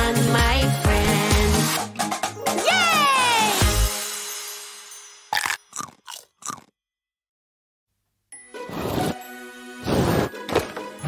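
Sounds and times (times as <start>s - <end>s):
children's song: 0.0s - 1.9s
cartoon sound effects: 2.6s - 3.8s.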